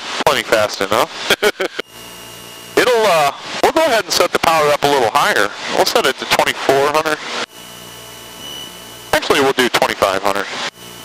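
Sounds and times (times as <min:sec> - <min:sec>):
airplane engine and propeller drone: 0:00.0 - 0:11.0
high whine: 0:00.0 - 0:11.0
man talking: 0:02.8 - 0:07.2, 0:09.1 - 0:10.5.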